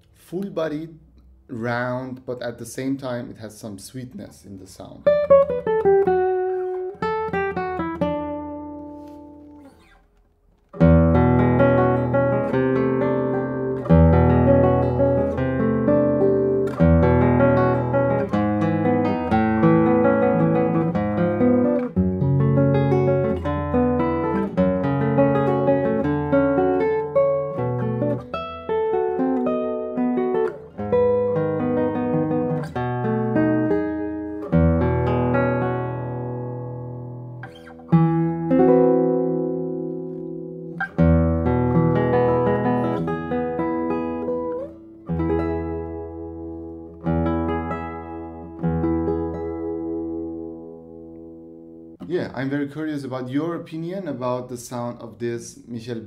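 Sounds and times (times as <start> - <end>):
fingerstyle classical guitar: 5.0 - 52.4.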